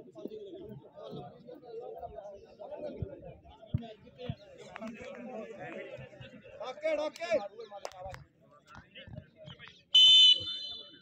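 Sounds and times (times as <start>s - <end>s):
referee's whistle blast: 10.0s - 11.0s.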